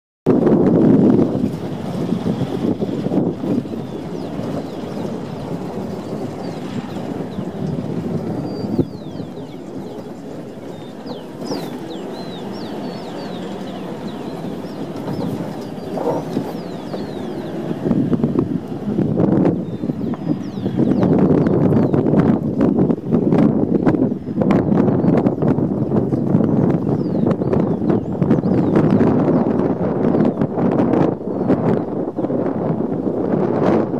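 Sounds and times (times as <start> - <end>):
wind on microphone: 0.2 - 33.9
vehicle on rough dirt road: 0.3 - 27.0.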